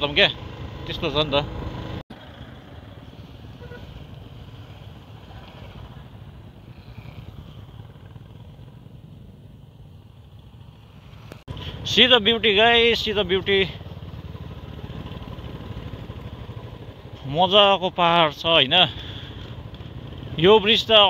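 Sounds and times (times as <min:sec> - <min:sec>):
motorcycle engine running: 0:00.0 - 0:21.0
road noise: 0:00.0 - 0:21.0.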